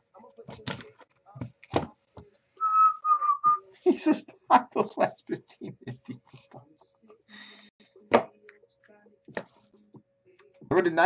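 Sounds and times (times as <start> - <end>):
person whistling short notes: 2.6 - 3.6.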